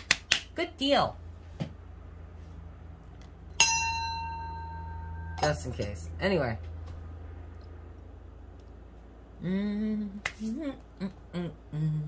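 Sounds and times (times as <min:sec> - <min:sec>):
faint low hum: 0:00.0 - 0:12.0
small metal chime ringing: 0:03.6 - 0:05.7.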